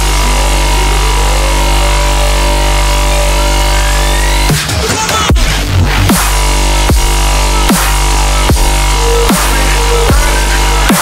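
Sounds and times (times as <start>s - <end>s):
rising pitch sweeps: 0.0s - 4.6s
deep sub-bass: 0.0s - 11.0s
distorted bass synth: 0.0s - 11.0s.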